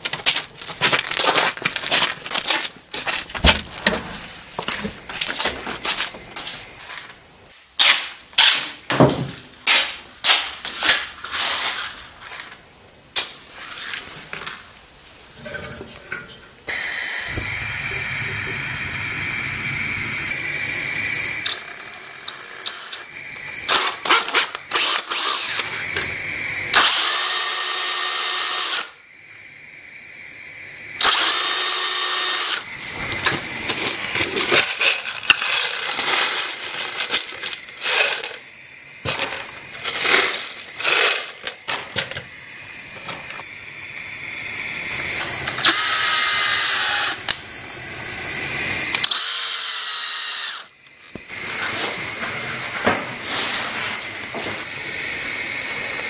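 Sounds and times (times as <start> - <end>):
power tool whining: 16.7 - 29.1, 30.4 - 56.0
tools clicking and clattering: 23.7 - 26.1, 33.2 - 38.4, 39.0 - 42.3.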